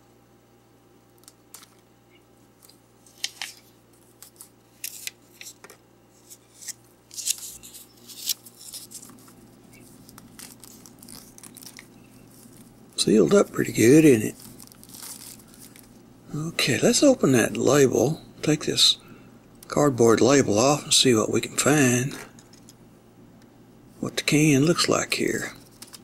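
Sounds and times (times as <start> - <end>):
plastic wrap crinkling: 7.1 - 16.0, 25.6 - 26.0
knife cutting plastic shrink-wrap: 14.3 - 15.8.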